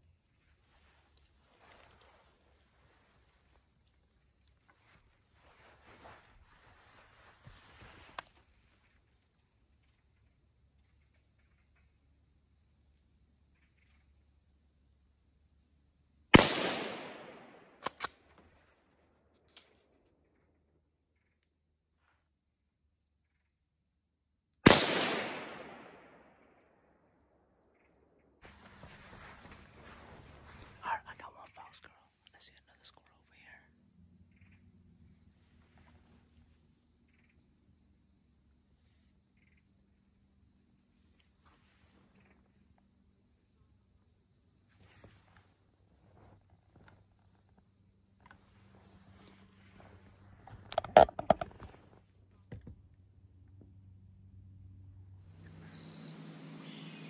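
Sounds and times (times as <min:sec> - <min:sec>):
rustling and handling noise: 0:00.6 - 0:03.7, 0:04.6 - 0:09.1, 0:28.4 - 0:30.8
rifle shots with echo: 0:16.4 - 0:17.9, 0:24.7 - 0:26.4.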